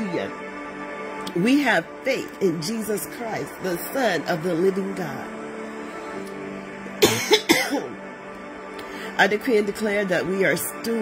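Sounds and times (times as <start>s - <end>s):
soft background music: 0.0s - 11.0s
person coughing: 7.0s - 8.0s.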